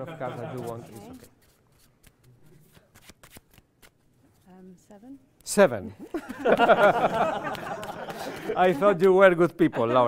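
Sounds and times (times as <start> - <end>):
playing cards shuffling: 0.4 - 4.5.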